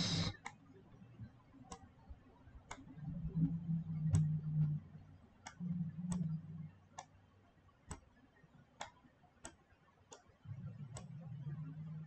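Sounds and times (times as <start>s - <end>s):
computer mouse clicking: 0.0s - 4.8s, 5.4s - 7.2s, 7.8s - 12.0s
faint low hum: 0.0s - 12.0s.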